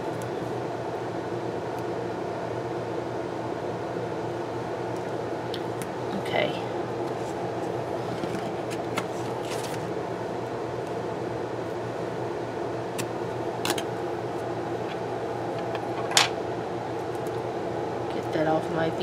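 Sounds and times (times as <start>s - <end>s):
fan-like hum: 0.0s - 19.0s
paper handling: 7.1s - 9.9s.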